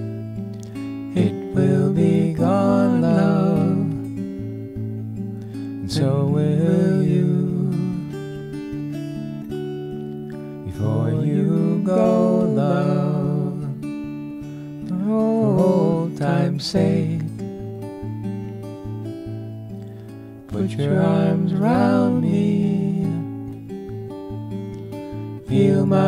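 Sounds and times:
fingerpicked acoustic guitar: 0.0s - 26.0s.

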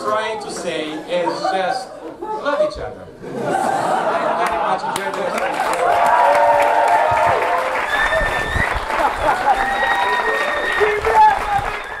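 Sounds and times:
audience applauding: 4.4s - 12.0s.

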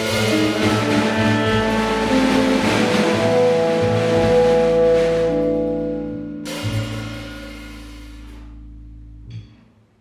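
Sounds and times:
jazz group playing: 0.0s - 9.2s
bass line: 0.0s - 9.6s.

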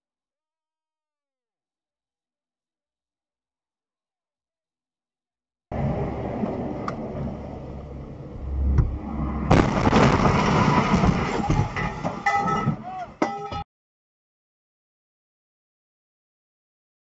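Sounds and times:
road and engine noise: 5.7s - 12.2s
debris rattling and rumbling: 5.7s - 13.6s
loud bang: 8.1s - 12.8s.

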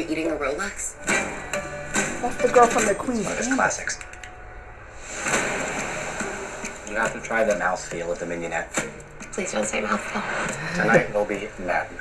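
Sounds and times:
steady rushing noise: 1.2s - 12.0s.

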